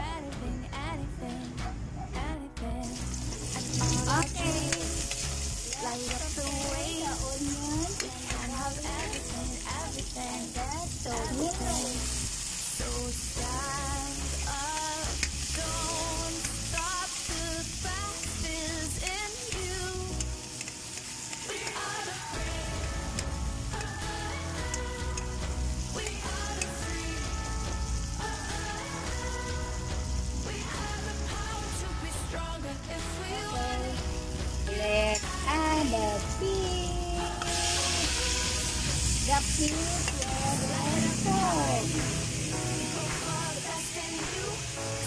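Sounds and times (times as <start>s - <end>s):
background pop music: 0.0s - 45.0s
person singing: 0.0s - 45.0s
onion sizzling in oil: 2.8s - 45.0s
metal spatula stirring in wok: 2.9s - 22.4s, 37.4s - 41.4s
metal spatula stirring pan: 38.8s - 41.4s.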